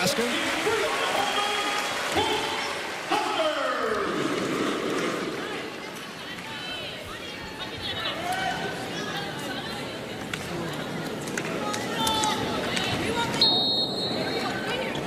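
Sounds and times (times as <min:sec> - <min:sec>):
crowd cheering and shouting: 0:00.0 - 0:10.1.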